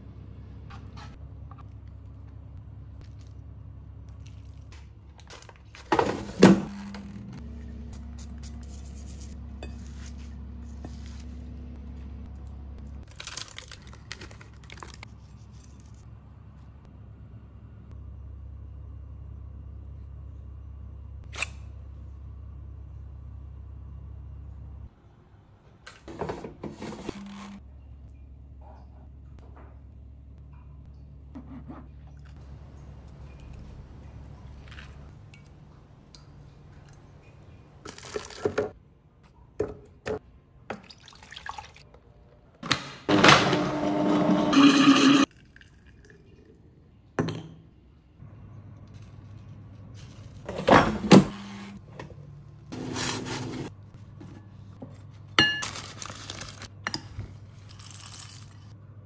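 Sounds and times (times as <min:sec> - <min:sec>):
blender blending: 0:43.1 - 0:45.3.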